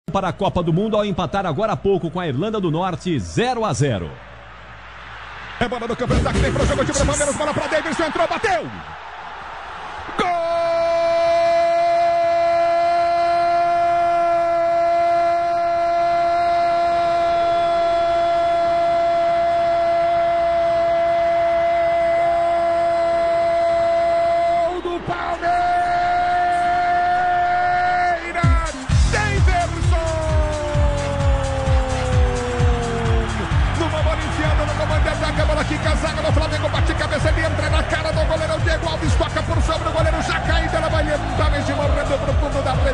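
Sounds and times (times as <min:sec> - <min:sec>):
commentator's long goal cry: 0:27.8 - 0:33.6.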